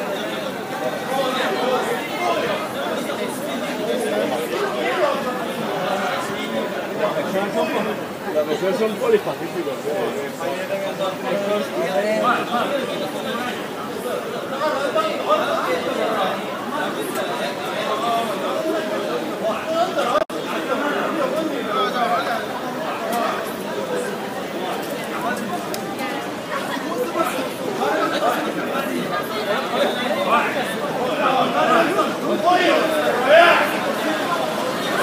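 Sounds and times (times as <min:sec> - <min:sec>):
people talking at once: 0:00.0 - 0:35.0.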